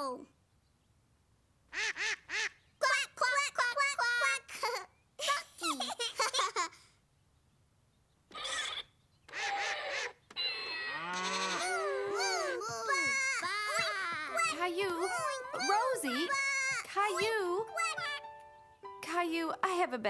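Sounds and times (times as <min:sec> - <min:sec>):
toy keyboard notes and effects: 0:10.3 - 0:11.8
children giggling and squealing: 0:10.9 - 0:18.2.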